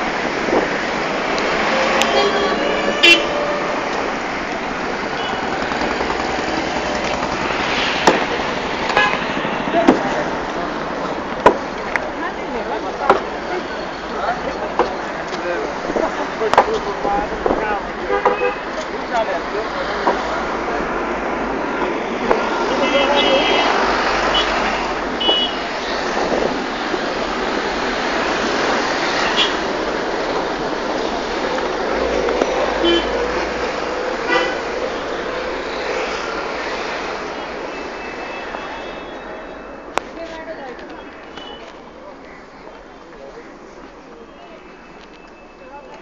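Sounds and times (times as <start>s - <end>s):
traffic engines and road noise: 0.0s - 46.0s
car horn toots: 1.6s - 3.8s, 18.1s - 18.7s
background voices: 18.7s - 37.7s.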